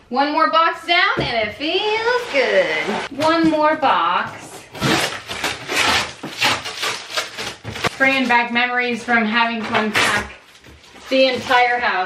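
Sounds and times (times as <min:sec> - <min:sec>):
packing tape pulled off cardboard: 0:04.7 - 0:08.4.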